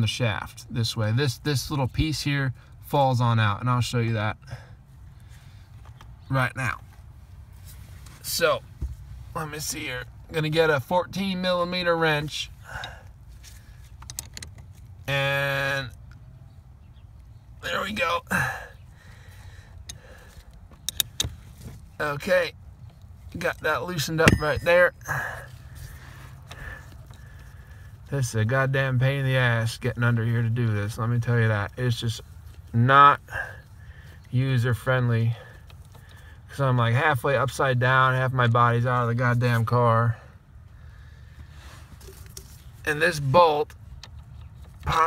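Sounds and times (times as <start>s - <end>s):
low steady hum: 0.0s - 45.0s
faint handling noises: 5.0s - 6.2s, 6.8s - 9.3s, 12.8s - 15.1s, 41.3s - 44.9s.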